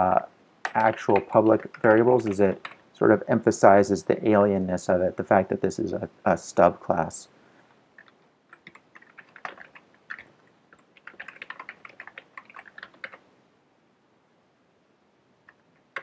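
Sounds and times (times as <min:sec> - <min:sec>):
typing on computer keyboard: 0:00.6 - 0:02.8, 0:08.0 - 0:13.2, 0:15.5 - 0:16.0.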